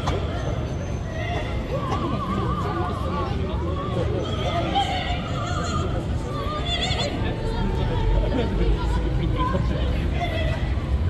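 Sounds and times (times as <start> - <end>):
crowd rumble: 0.0 - 11.0.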